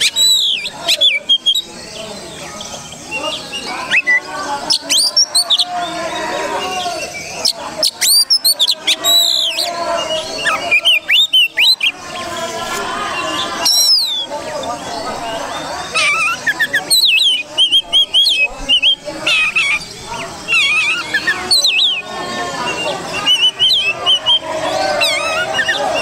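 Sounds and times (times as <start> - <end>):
bird singing varied whistles: 0.0 - 5.7, 6.6 - 12.0, 13.3 - 14.3, 15.9 - 26.0.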